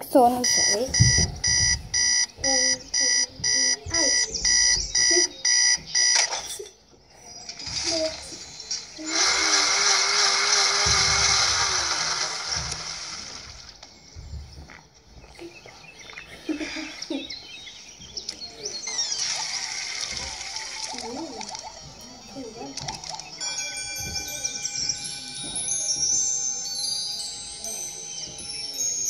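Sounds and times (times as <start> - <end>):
electronic alarm beeping: 0.0 - 6.6, 16.9 - 25.6.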